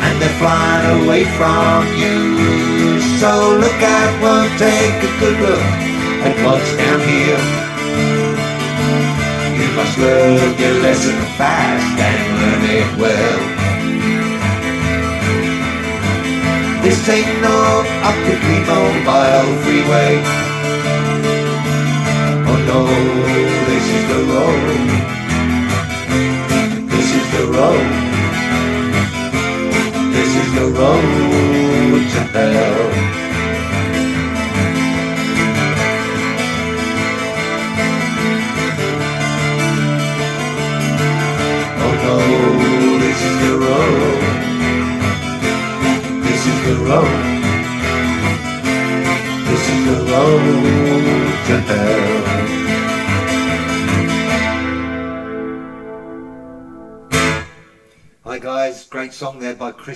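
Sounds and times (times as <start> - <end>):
bending guitar melody: 0.0 - 58.4
acoustic guitar strumming chords: 0.0 - 58.5.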